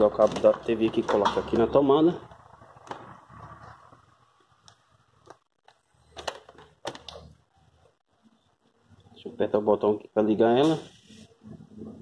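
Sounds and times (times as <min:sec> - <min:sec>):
cable handling clicks and knocks: 0:00.1 - 0:01.7, 0:04.6 - 0:07.4.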